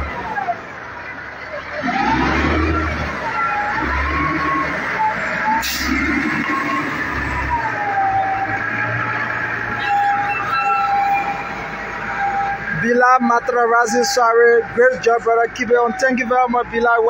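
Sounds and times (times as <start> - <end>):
siren wailing: 0.0 - 0.7, 1.6 - 17.0
street traffic: 0.0 - 17.0.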